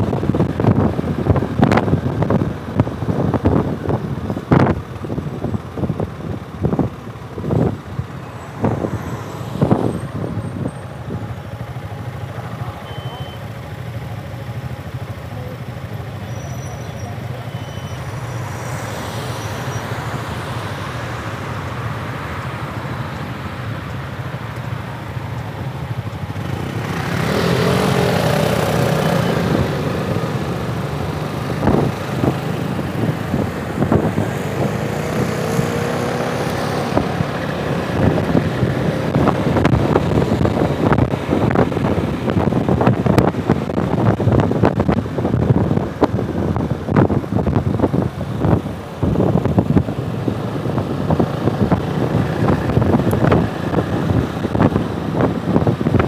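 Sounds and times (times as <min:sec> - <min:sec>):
wind on microphone: 0:00.0 - 0:11.7, 0:25.5 - 0:56.0
motorcycle engines revving: 0:00.0 - 0:56.0.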